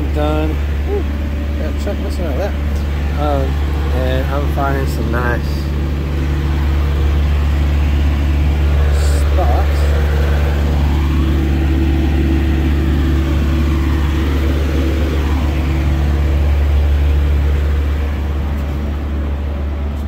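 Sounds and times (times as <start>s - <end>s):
diesel truck engine idling: 0.0s - 20.0s.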